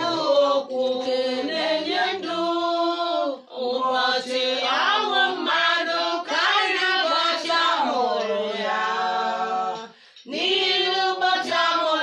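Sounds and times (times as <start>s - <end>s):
women singing without instruments: 0.0s - 12.0s.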